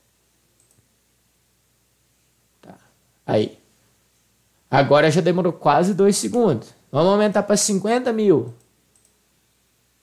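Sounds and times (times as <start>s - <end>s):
faint computer mouse clicks: 0.6s - 0.9s, 8.6s - 9.2s.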